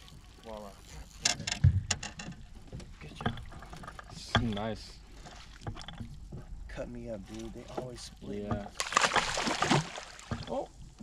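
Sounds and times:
irregular clicks and knocks: 1.2 - 6.7.

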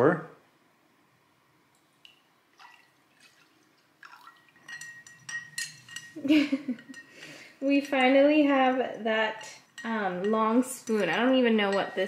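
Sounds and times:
liquor pouring into a glass: 2.0 - 5.8
glass ringing: 4.2 - 8.2, 9.3 - 12.0
bar spoon clinking in glass: 4.4 - 7.2, 9.4 - 12.0.

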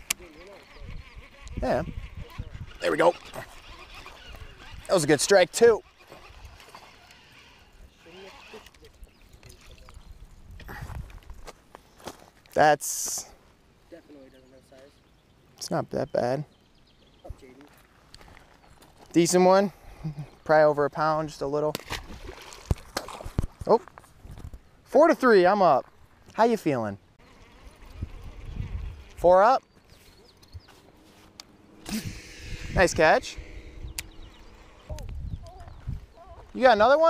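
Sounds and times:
fishing reel being cranked: 0.1 - 9.0, 27.2 - 29.3
sharp clicks: 33.9 - 34.2.

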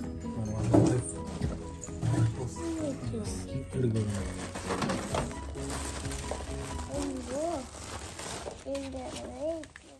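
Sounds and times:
plastic film crinkling: 2.1 - 9.9.

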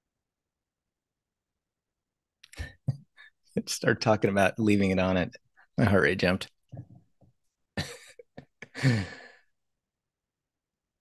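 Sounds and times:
man laughing: 7.8 - 9.4
breathy sigh: 8.7 - 9.5.

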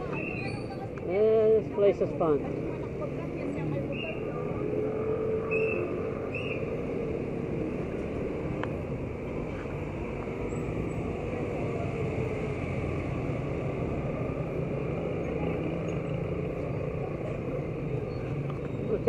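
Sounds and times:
motorcycles passing: 0.0 - 19.0.

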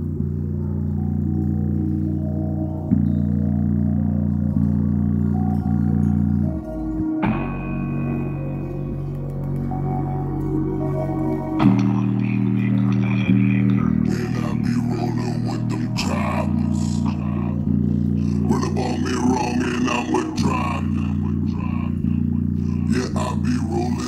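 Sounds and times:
rap music through a speaker: 0.0 - 24.0
sustained bass notes: 0.0 - 24.0.

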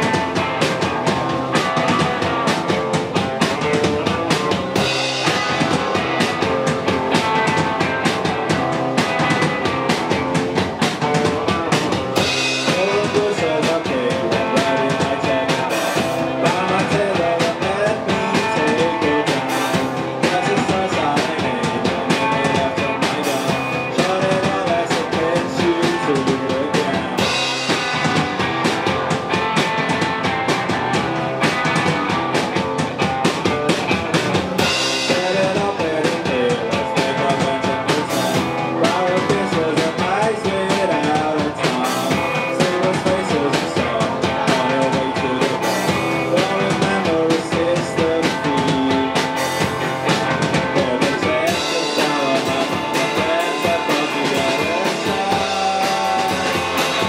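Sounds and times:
rock band playing: 0.0 - 57.0.

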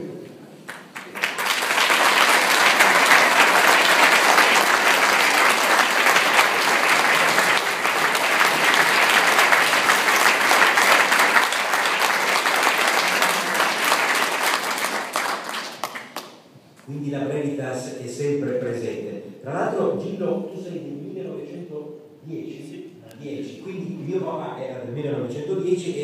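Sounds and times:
audience applauding: 0.7 - 16.4.

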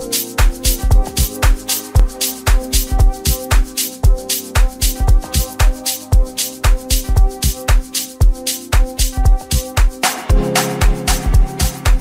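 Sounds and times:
house music: 0.0 - 12.0.

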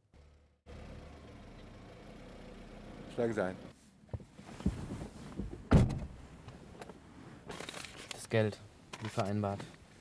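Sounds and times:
car engine idling: 0.1 - 3.7.

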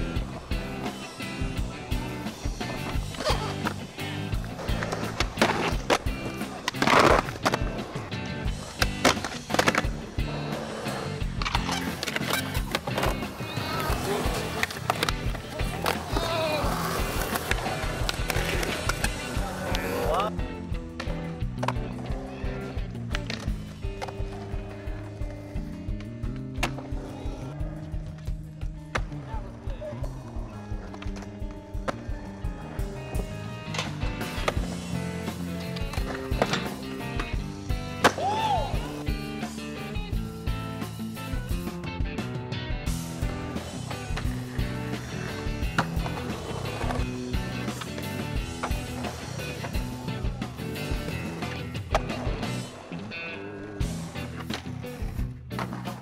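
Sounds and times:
skateboards clacking down: 0.0 - 41.4, 42.8 - 56.0
skateboard trucks grinding: 0.0 - 41.5, 42.8 - 56.0
music with steady beat: 0.0 - 53.0
skateboard wheels rolling: 0.0 - 56.0.

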